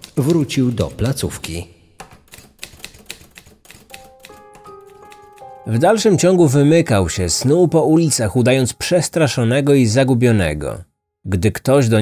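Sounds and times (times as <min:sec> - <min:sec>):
held music notes: 0:03.9 - 0:10.3.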